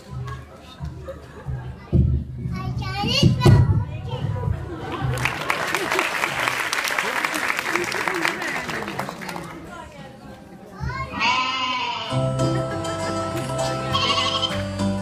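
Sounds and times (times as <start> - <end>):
children's voices: 0.0 - 5.0, 10.6 - 12.1
children chattering: 0.0 - 5.1, 7.2 - 14.6
audience clapping: 4.8 - 9.8, 14.4 - 15.0
music in a hall: 12.1 - 15.0.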